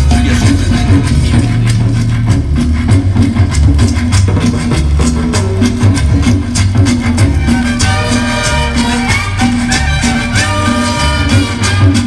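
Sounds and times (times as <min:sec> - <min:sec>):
live band playing instrumental: 0:00.0 - 0:12.0.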